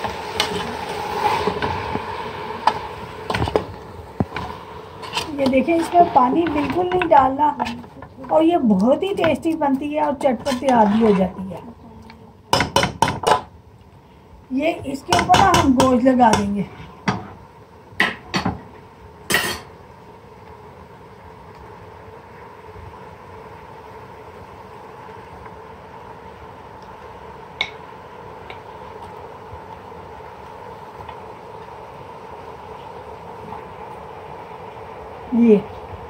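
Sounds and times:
knocks on metal cooking pot: 0:12.5 - 0:13.4.

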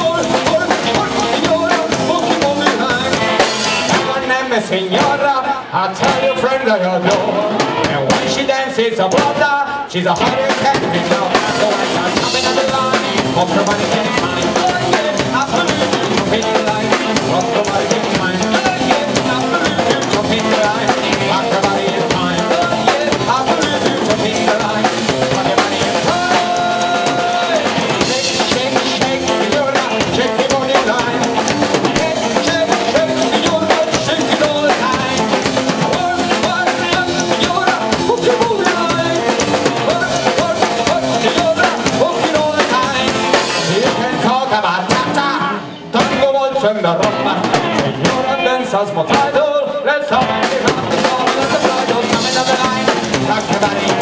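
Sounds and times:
bass drum and snare: 0:00.0 - 0:05.4, 0:07.0 - 0:45.3, 0:50.2 - 0:54.0
blues-rock band playing: 0:00.0 - 0:54.0.

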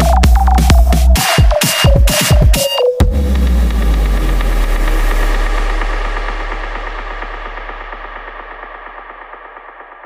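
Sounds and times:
deep sustained bass drone: 0:03.0 - 0:10.0.

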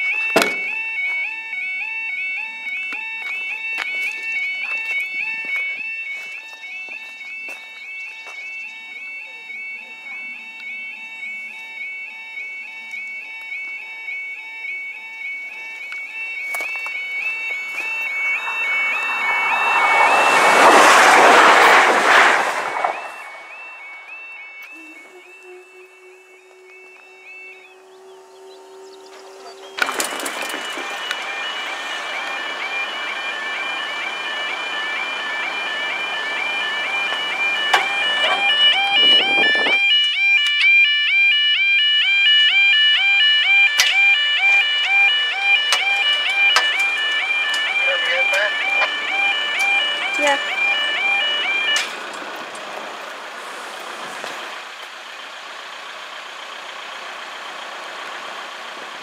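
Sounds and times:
level crossing alarm warbling: 0:00.0 - 0:56.7
passenger train passing: 0:08.8 - 0:40.0, 0:43.0 - 0:59.0.

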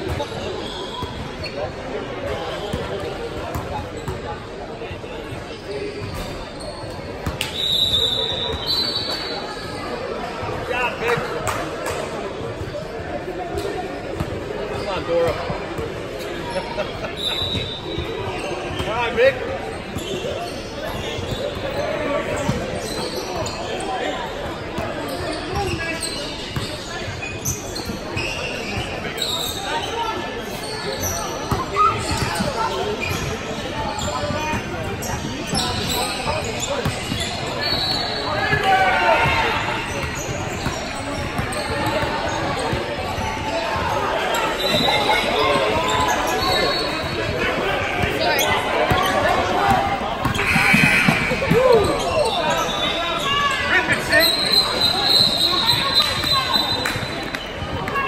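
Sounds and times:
sneaker squeaks: 0:00.0 - 0:04.5, 0:05.3 - 0:10.5, 0:16.2 - 0:58.0
people calling out: 0:47.5 - 0:56.8.

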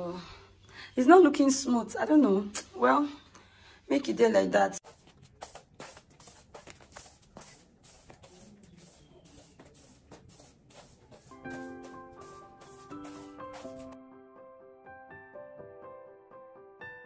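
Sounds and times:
broom sweeping tiled floor: 0:04.8 - 0:14.0
soft piano music: 0:11.2 - 0:17.0.

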